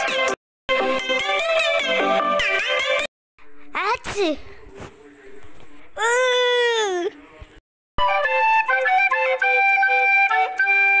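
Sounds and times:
child wailing: 6.0 - 7.1
flute-like outro melody: 8.0 - 11.0.

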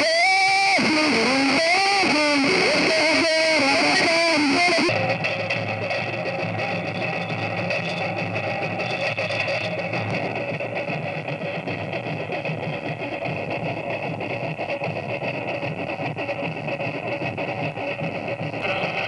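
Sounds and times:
live guitar music: 0.0 - 4.9.

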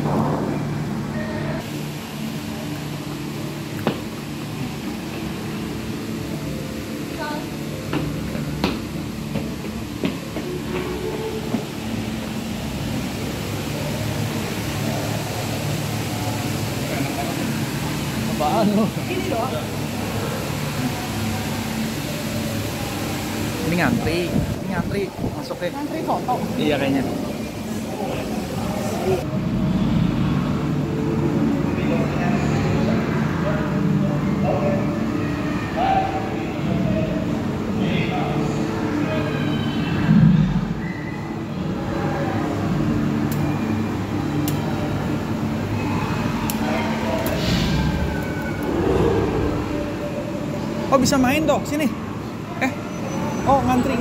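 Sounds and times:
steady rushing noise: 0.0 - 35.3, 44.8 - 52.2
low rumble of indoor hall: 0.0 - 53.7
indistinct murmuring voices: 25.8 - 50.9
low hum: 44.8 - 50.9.

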